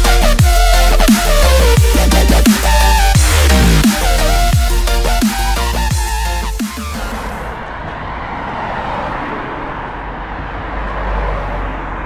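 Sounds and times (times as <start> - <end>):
steady rushing outdoor noise: 1.6 - 12.0.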